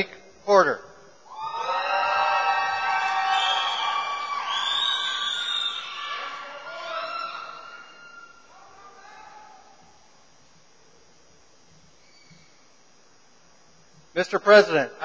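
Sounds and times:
audience cheering and whooping: 1.3 - 8.4.

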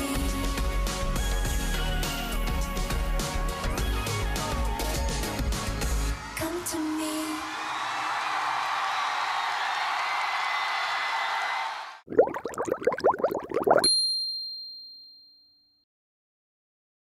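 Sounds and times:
audience crowd noise: 6.0 - 12.0
bright ding: 13.8 - 15.6.

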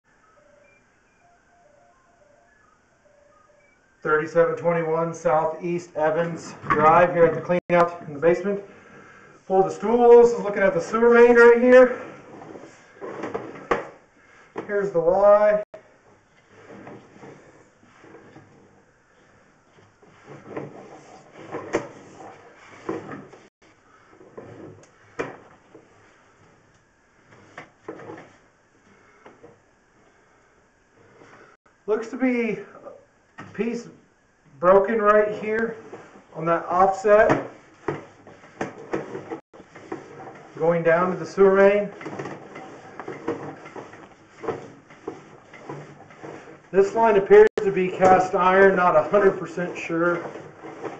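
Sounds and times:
cable scraping and knocking in pipe: 4.4 - 30.2, 34.6 - 50.9.

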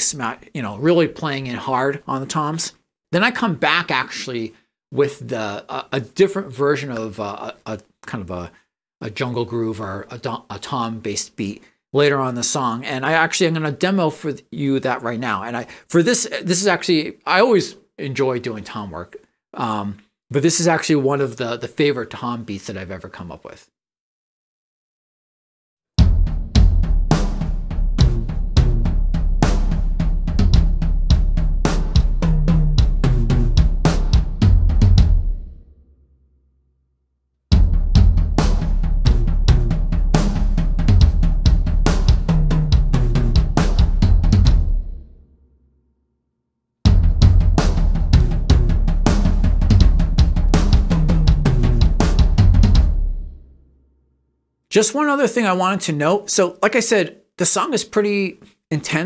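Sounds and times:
drum kit playing tom groove: 26.0 - 35.6, 37.5 - 45.0, 46.9 - 53.3.

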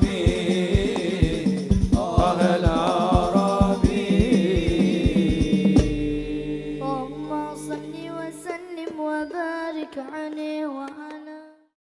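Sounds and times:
frame drums beating quickly: 0.0 - 8.1
men singing in unison: 0.0 - 8.6.

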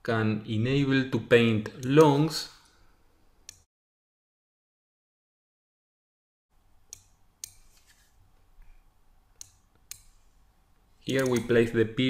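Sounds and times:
mouse and keyboard clicks: 6.9 - 7.9, 11.1 - 11.7.

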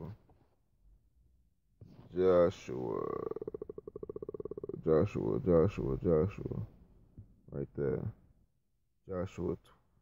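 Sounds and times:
man's creaky hesitation: 2.7 - 5.3.

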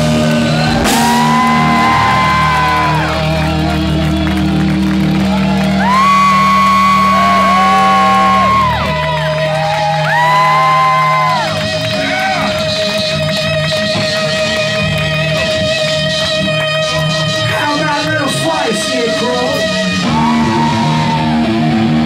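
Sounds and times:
live punk rock band playing: 0.0 - 22.0.

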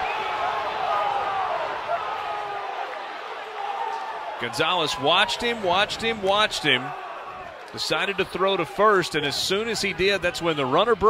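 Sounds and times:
ballpark crowd voices: 0.0 - 11.0.

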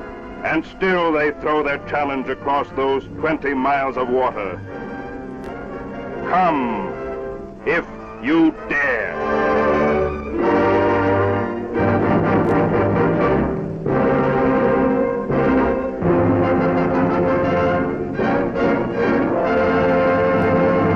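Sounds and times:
held brass chords: 0.0 - 20.9
timpani: 0.0 - 20.9.

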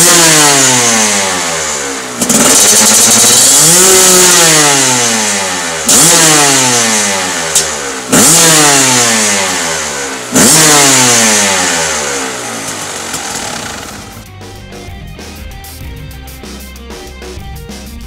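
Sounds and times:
two-stroke engine revving: 0.0 - 14.3
music: 14.1 - 18.0.

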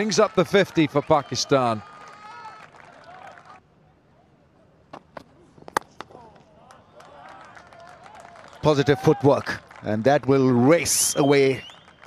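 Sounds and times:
cricket bat striking ball: 4.9 - 6.3.

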